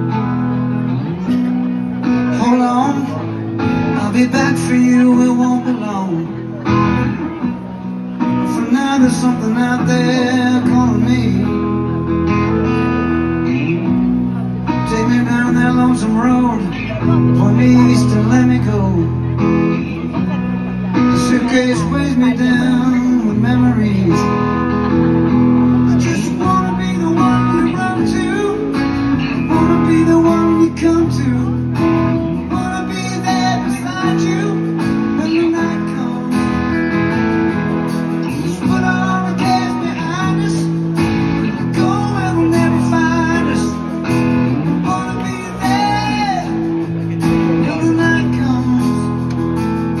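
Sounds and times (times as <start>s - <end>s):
acoustic guitar strumming chords: 0.0s - 50.0s
guitar playing gliding melody: 0.0s - 50.0s.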